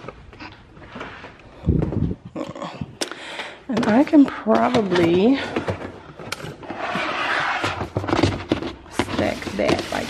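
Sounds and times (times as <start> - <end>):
plastic bin scraping on wood: 6.6 - 10.0.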